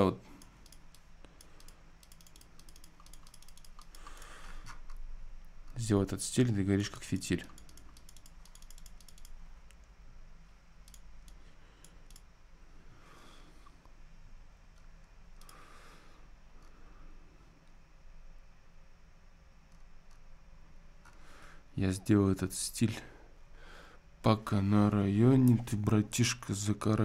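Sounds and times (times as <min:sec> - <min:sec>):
low electrical hum: 0:00.0 - 0:27.0
keyboard typing clicks: 0:00.4 - 0:04.2, 0:07.2 - 0:09.4, 0:10.8 - 0:12.3.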